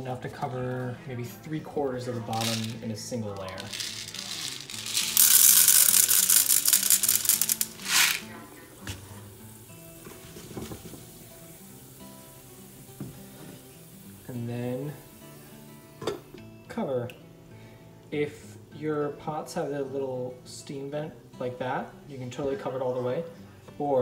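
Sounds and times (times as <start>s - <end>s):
background music: 0.0s - 24.0s
popcorn kernels rattling into pan: 2.3s - 8.3s
pan sizzling: 2.3s - 15.8s.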